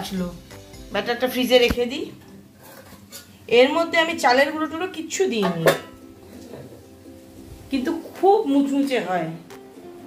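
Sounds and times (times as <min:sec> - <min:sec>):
woman's voice: 0:00.0 - 0:02.2, 0:03.5 - 0:05.8, 0:07.7 - 0:09.5
metal spoon scraping a steel bowl: 0:02.6 - 0:03.4.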